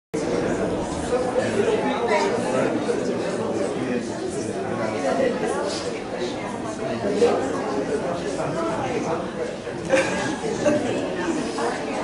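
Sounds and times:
murmur of voices: 0:00.2 - 0:12.0.

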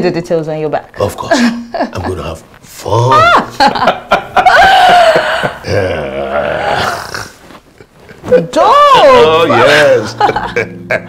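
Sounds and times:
people laughing: 0:03.2 - 0:07.1, 0:09.5 - 0:11.0.

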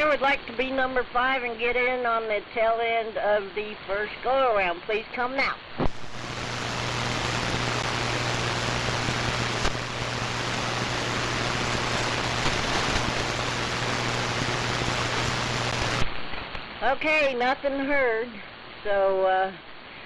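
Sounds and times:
radio static hiss: 0:00.0 - 0:20.0
low hum: 0:05.8 - 0:16.8.

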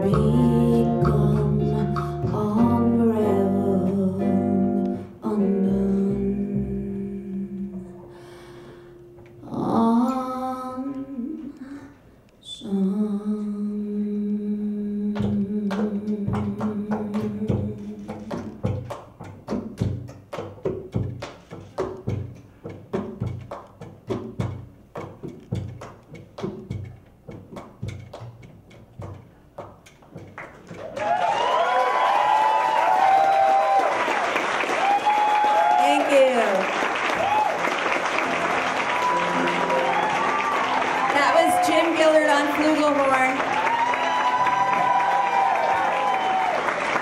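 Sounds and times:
person singing: 0:00.0 - 0:08.6, 0:09.4 - 0:18.5
soft percussion taps: 0:15.2 - 0:30.8
audience applause with cheering: 0:30.7 - 0:47.0.

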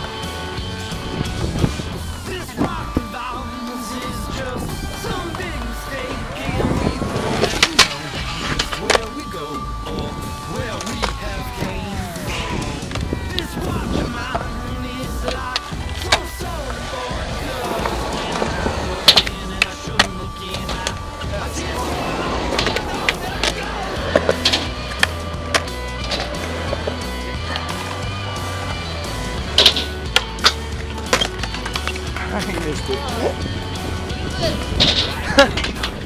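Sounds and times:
background music: 0:00.0 - 0:36.0
skateboard rolling on concrete: 0:00.0 - 0:36.0.

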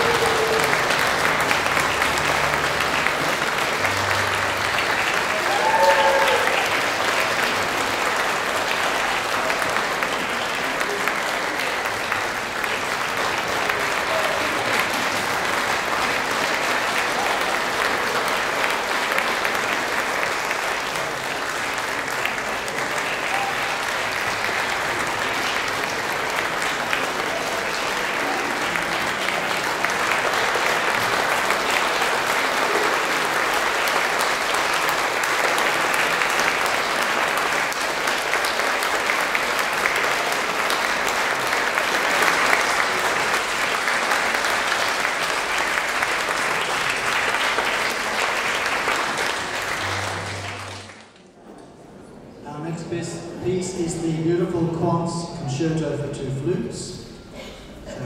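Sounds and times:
audience applauding: 0:00.0 - 0:51.4.

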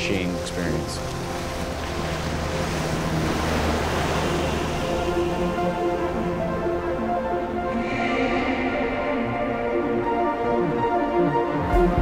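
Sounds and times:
sea water rushing: 0:00.0 - 0:12.0
wind: 0:00.0 - 0:12.0.

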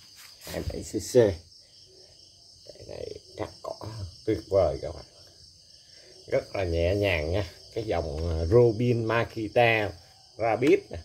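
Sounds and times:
crickets chirping: 0:00.0 - 0:11.0.

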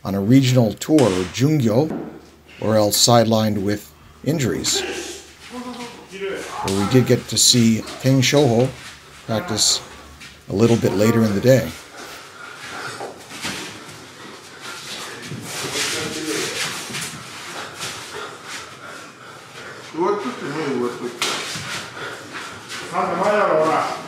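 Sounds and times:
men calling out: 0:04.2 - 0:11.9.

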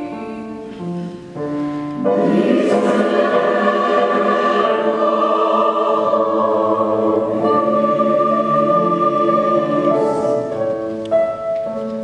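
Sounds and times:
mixed choir singing held notes: 0:02.0 - 0:11.0.

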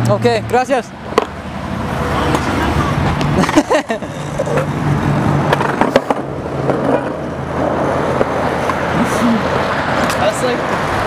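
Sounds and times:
skateboard wheels rolling on asphalt: 0:01.0 - 0:11.0
skateboard clicks: 0:05.5 - 0:07.2.

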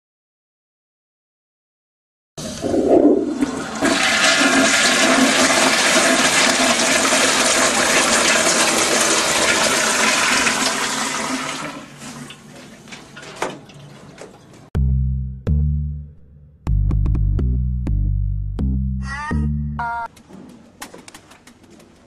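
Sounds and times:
toilet flushing: 0:02.4 - 0:14.4.

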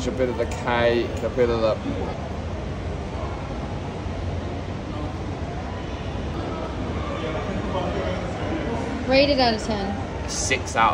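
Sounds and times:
public space ambience: 0:00.0 - 0:10.9.

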